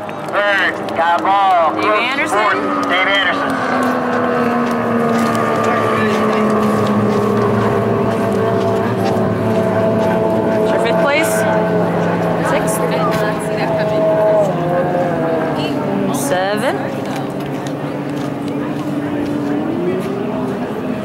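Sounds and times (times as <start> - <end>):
racing outboard engines drone: 0.0 - 21.0.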